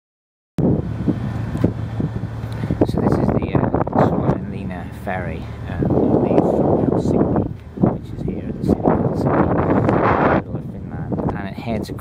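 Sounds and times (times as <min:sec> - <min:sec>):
ferry engine hum: 0:00.6 - 0:12.0
wind buffeting microphone: 0:00.6 - 0:12.0.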